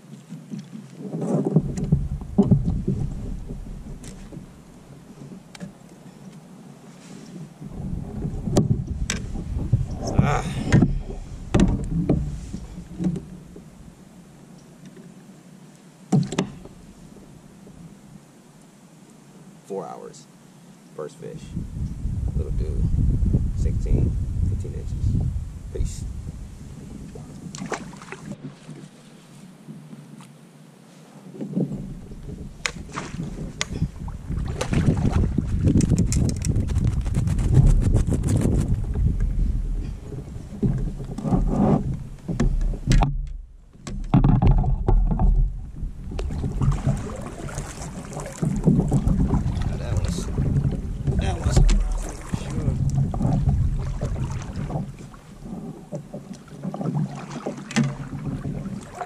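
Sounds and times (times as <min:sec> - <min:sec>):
wind rumbling on microphone: 0:00.0 - 0:05.8, 0:07.0 - 0:14.2, 0:21.2 - 0:30.3, 0:31.2 - 0:59.0
water around kayak: 0:00.0 - 0:59.0
water splashes and drips: 0:27.1 - 0:28.9, 0:32.2 - 0:36.6, 0:44.9 - 0:59.0
gear clicks and knocks: 0:35.7 - 0:38.1.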